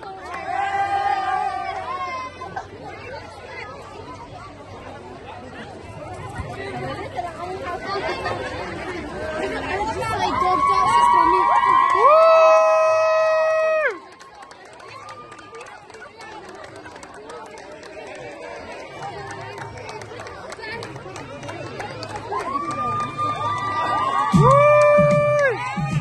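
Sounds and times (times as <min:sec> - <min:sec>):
crowd chatter: 0:00.0 - 0:26.0
women ululating: 0:10.3 - 0:14.0, 0:22.4 - 0:25.9.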